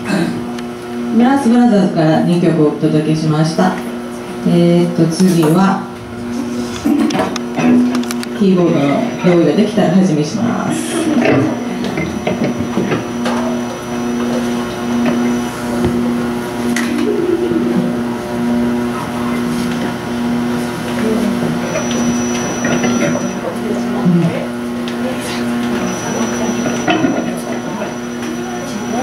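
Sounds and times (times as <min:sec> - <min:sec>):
keyboard pulsing low note: 0:05.8 - 0:29.0.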